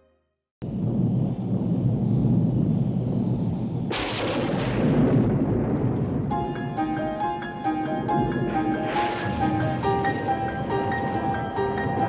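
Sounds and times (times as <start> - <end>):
low rumble: 0.6 - 12.0
thunderclap-like crash: 0.6 - 12.0.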